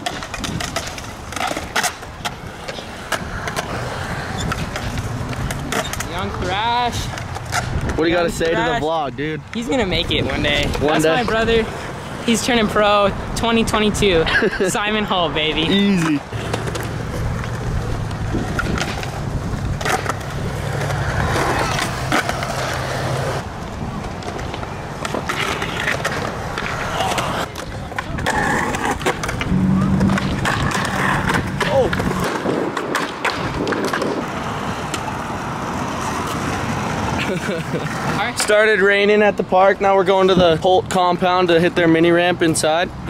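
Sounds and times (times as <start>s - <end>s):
skateboard clacking on ground: 0.0s - 8.6s, 15.6s - 39.1s
skateboard wheels rolling on concrete: 0.0s - 43.0s.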